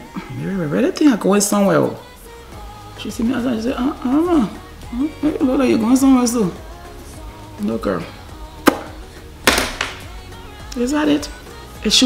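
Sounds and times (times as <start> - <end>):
background music: 0.0 - 12.0
sharp tap on makeup palette: 8.6 - 8.9
knock on makeup palette: 9.5 - 10.1.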